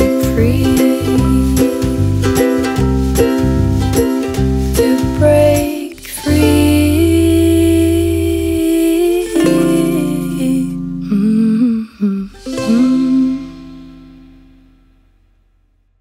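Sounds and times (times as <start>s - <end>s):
plucked string accompaniment: 0.0s - 15.7s
wordless vocal line: 4.8s - 13.7s.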